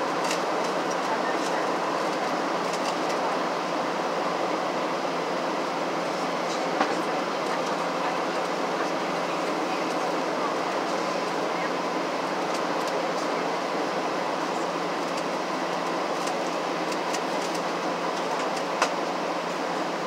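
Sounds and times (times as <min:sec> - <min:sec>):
airliner engines droning: 0:00.0 - 0:20.0.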